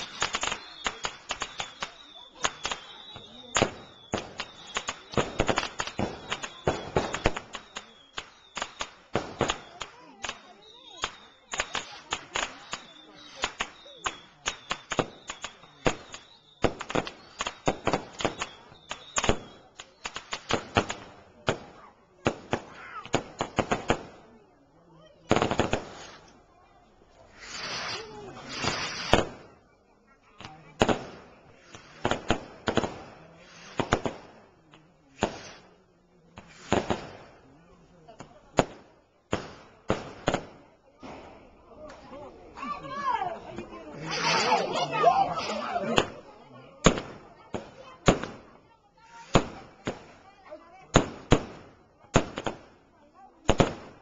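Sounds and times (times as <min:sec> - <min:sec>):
fireworks bangs and cracks: 0:00.0 - 0:24.4, 0:25.0 - 0:26.3, 0:27.3 - 0:29.5, 0:30.4 - 0:35.8, 0:36.4 - 0:37.4, 0:38.2 - 0:54.0
people's voices: 0:00.0 - 0:54.0.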